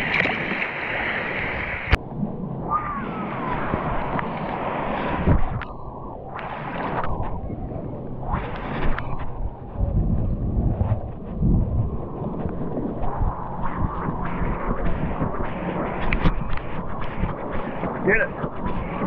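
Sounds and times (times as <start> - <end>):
sea water sloshing and splashing: 0.0 - 19.0
wind buffeting microphone: 0.0 - 19.0.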